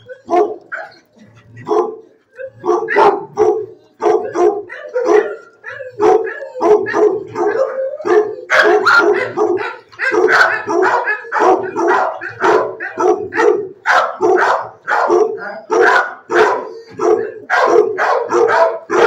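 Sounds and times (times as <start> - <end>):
dogs barking: 0.0 - 19.0.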